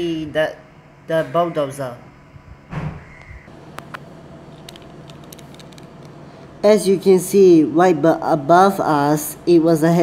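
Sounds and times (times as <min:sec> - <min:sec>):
low room hum: 0:00.0 - 0:10.0
phone handling clicks: 0:03.7 - 0:06.2.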